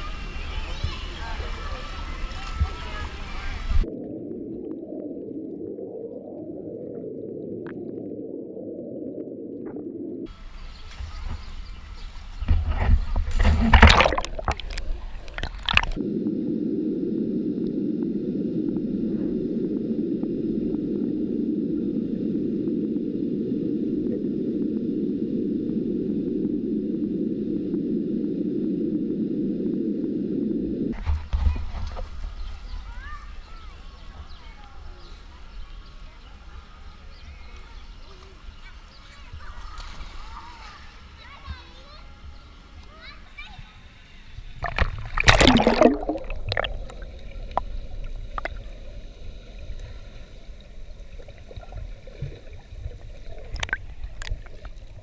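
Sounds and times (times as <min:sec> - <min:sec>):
muffled underwater rumble: 0:00.0 - 0:55.0
loud water splashing: 0:13.2 - 0:16.0, 0:44.6 - 0:47.7.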